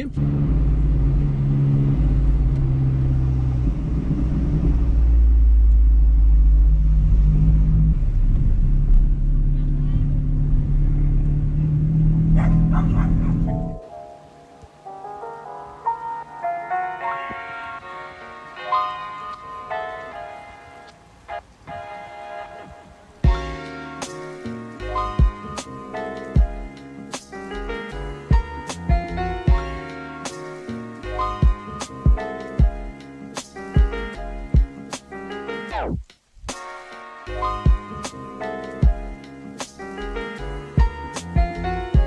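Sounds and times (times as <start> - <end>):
car engine low note: 0.0 - 13.8
road noise: 0.0 - 42.0
light picked-note music: 13.4 - 42.0.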